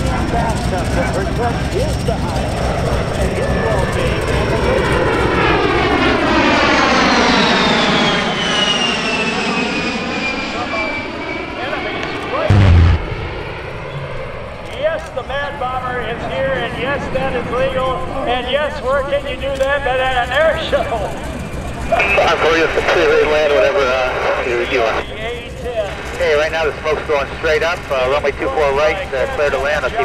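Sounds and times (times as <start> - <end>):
jet engines whining flying past: 0.0 - 30.0
explosion boom: 12.5 - 14.2.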